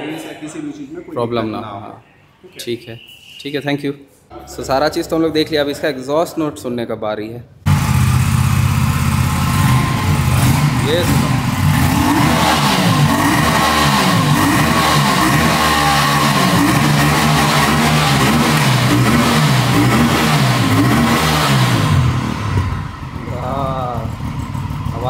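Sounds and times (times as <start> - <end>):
motorcycle engine revving: 7.7 - 25.0.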